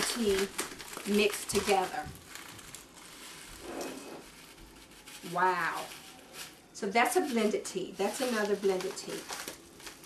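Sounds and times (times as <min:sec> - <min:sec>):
foil pouch rustling: 0:00.0 - 0:10.0.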